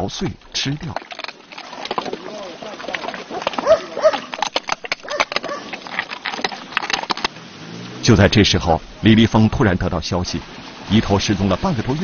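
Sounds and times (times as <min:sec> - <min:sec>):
pigs grunting and squealing: 0:00.8 - 0:08.3
walnut shells cracking: 0:00.9 - 0:07.3.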